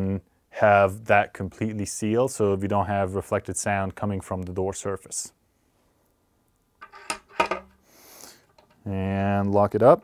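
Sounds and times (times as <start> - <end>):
short soft hiss: 7.7 - 8.6.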